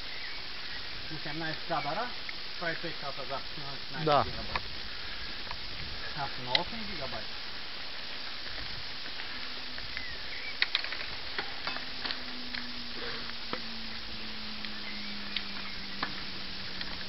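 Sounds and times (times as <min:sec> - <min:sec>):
bicycle tyres hissing: 0:00.0 - 0:17.0
faint low hum: 0:00.1 - 0:17.0
bike clicking and rattling: 0:04.3 - 0:17.0.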